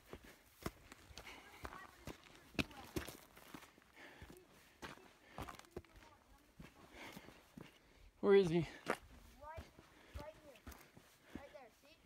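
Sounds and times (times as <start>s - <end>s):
footsteps on rocks: 0.0s - 12.0s.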